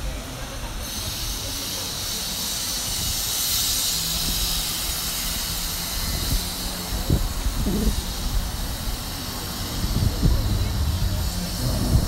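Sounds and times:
low rumble of street noise: 0.0 - 12.0.

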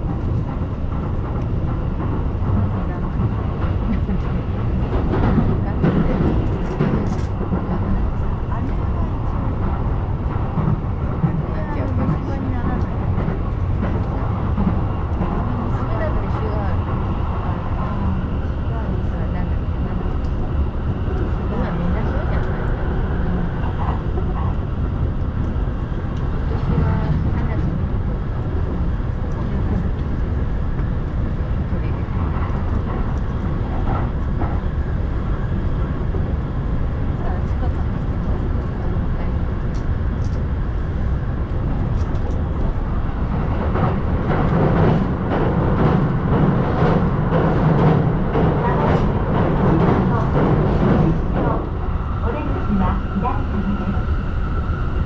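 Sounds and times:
electric train rumbling on rails: 0.0 - 55.0
faint passenger voices: 0.0 - 55.0.

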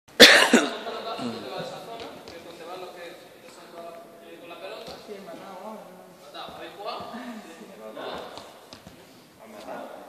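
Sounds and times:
person coughing: 0.2 - 1.4.

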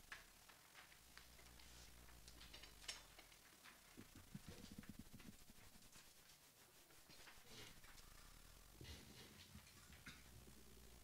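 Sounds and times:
sheet music rustling and clicking: 0.0 - 8.3
faint low hum: 0.0 - 11.0.

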